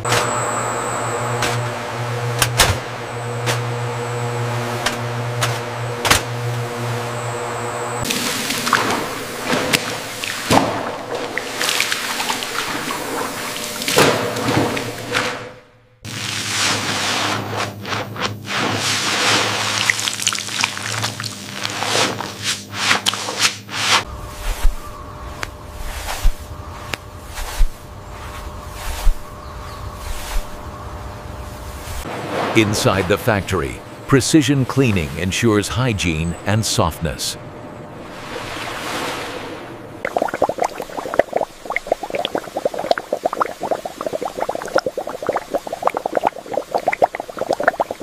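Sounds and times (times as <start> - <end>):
water bubbling: 39.9 - 48.0.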